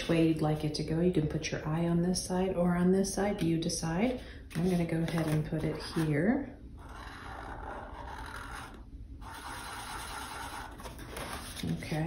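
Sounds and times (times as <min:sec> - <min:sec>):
marker scratching on paper plate: 0:06.8 - 0:11.5.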